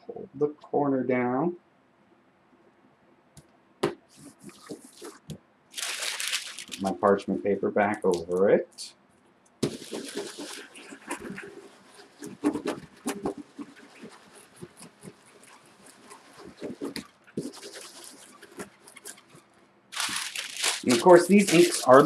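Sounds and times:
baren rubbing on paper: 4.1 - 5.3, 9.6 - 22.0.

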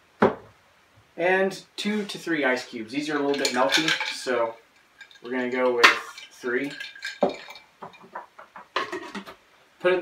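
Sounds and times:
ice cubes clinking in blender jar: 3.2 - 4.4, 5.0 - 8.0.

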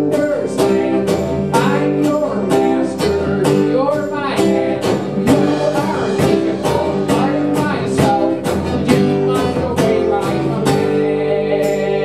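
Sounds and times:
acoustic guitar strumming: 0.0 - 12.0
drum kit beat: 0.0 - 12.0.

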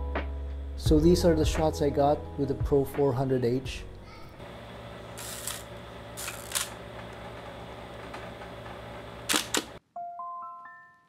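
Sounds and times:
camera mechanical clicks and clunks: 6.2 - 6.8, 9.3 - 9.8.

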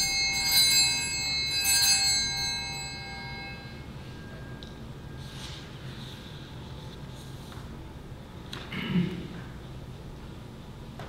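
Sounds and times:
altar bells ringing: 0.0 - 5.9.

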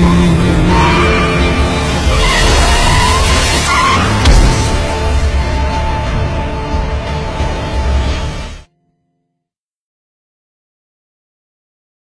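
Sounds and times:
car tyres screeching: 0.0 - 5.0
music: 0.0 - 9.6.

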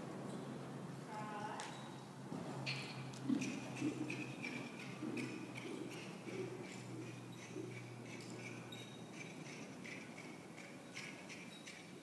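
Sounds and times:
horse hoofbeats trotting: 2.3 - 12.0.

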